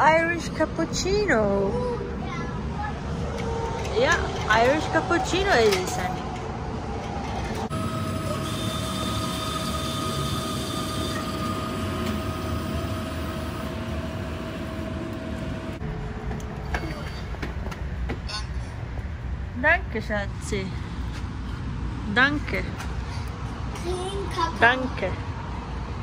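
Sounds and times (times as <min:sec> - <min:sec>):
vending machine pump humming: 0:03.1 - 0:16.2.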